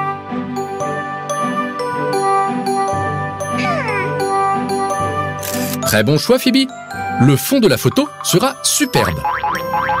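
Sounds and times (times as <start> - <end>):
tinkly cartoon music: 0.0 - 10.0.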